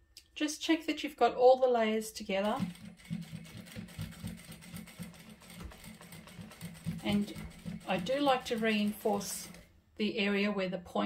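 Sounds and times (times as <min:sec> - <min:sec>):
sewing machine clicks and knocks: 0:02.4 - 0:09.7.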